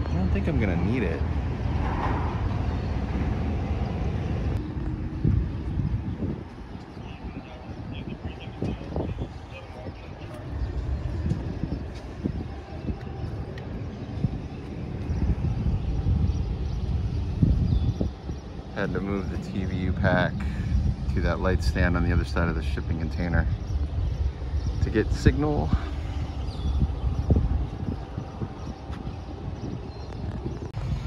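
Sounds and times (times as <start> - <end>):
traffic rumble: 0.0 - 31.0
wind on microphone: 0.0 - 31.0.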